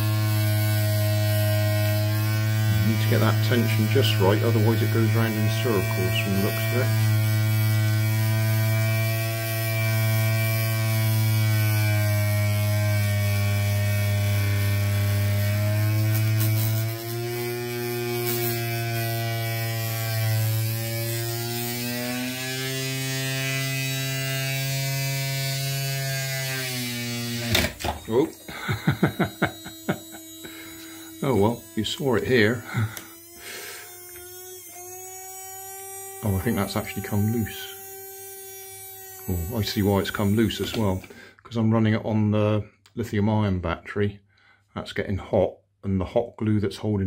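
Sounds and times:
small electric motor buzzing: 0:00.0 - 0:41.3.

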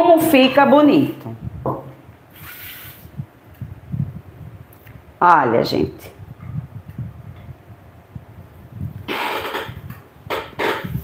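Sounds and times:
short soft hiss: 0:02.3 - 0:03.2.

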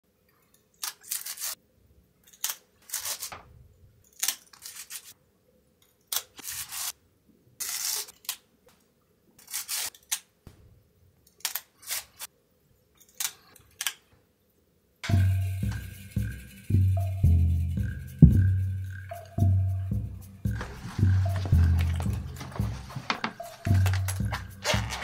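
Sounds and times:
rustling snaps: 0:00.4 - 0:01.6, 0:02.2 - 0:05.2, 0:20.4 - 0:25.0.

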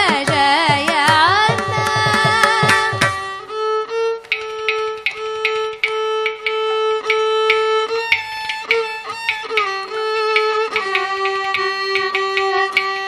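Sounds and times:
violin sliding between pitches: 0:01.6 - 0:13.0.

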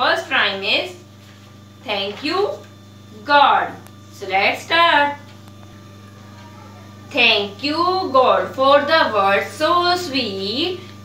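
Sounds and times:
woman speaking: 0:00.0 - 0:01.1, 0:01.8 - 0:05.3, 0:07.1 - 0:10.9
steady low hum: 0:00.0 - 0:11.0.

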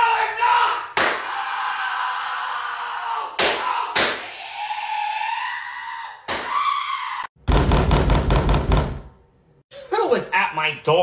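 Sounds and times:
person screaming: 0:00.0 - 0:07.3
thud: 0:07.5 - 0:09.1.

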